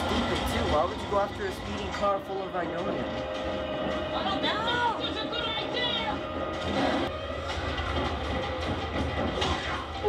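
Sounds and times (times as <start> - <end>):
film score: 0.0 - 10.0.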